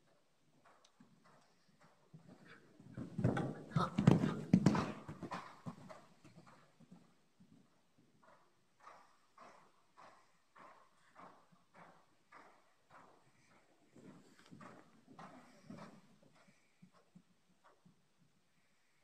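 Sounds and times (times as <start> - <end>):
horse hoofbeats on sand: 0.0 - 18.7.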